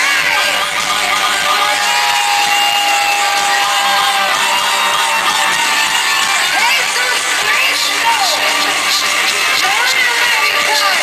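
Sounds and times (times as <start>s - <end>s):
crowd screaming and cheering: 0.0s - 11.0s.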